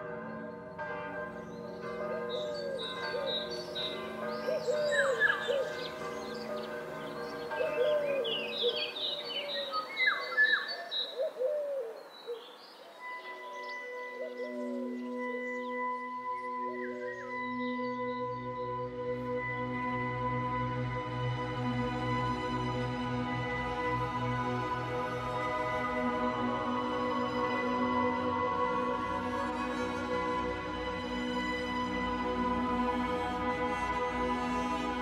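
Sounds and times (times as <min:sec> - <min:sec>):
church bells ringing: 0:00.0 - 0:11.6, 0:12.8 - 0:20.8, 0:21.4 - 0:35.0
soft ambient music: 0:00.0 - 0:35.0
birds singing and calling: 0:01.3 - 0:19.9.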